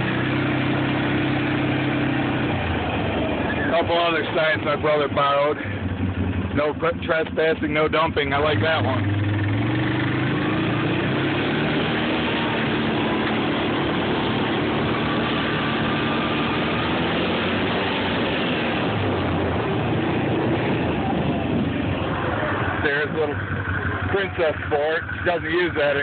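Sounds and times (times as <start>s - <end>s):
noisy rush: 0.0s - 26.0s
quad engine running: 0.0s - 26.0s.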